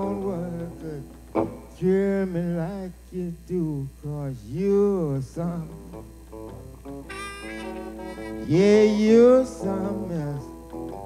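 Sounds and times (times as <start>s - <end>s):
low electrical hum: 0.0s - 11.0s
blues harmonica bending notes: 5.7s - 11.0s.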